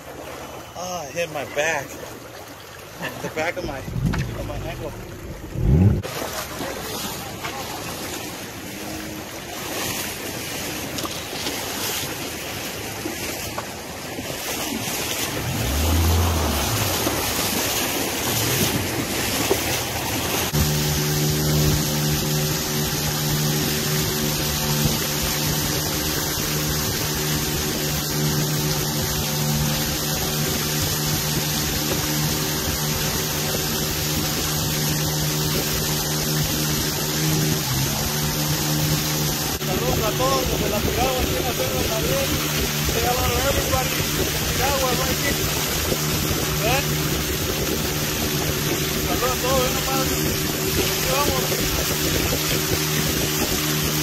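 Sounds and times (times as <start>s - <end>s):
outboard motor running: 0.0s - 54.0s
shallow river water rushing: 0.0s - 54.0s
wind on microphone: 3.7s - 6.1s, 14.1s - 54.0s.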